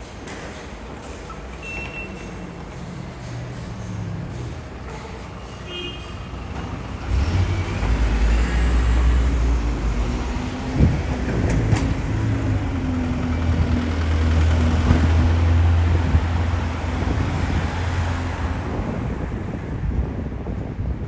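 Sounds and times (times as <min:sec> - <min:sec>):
heavy bus engine rumble: 0:00.0 - 0:21.0.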